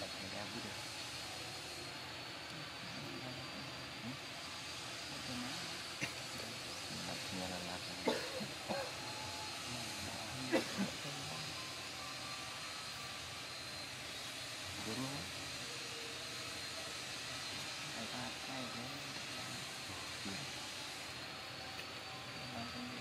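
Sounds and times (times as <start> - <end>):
faint high whine: 0.0 - 23.0
steady background hiss: 0.0 - 23.0.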